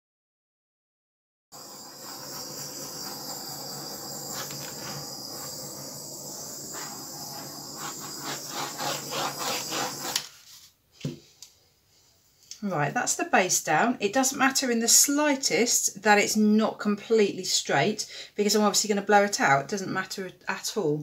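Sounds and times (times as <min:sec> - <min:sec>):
steady high hiss: 0:01.6 - 0:10.4
hand spreading wet paint: 0:01.6 - 0:10.8.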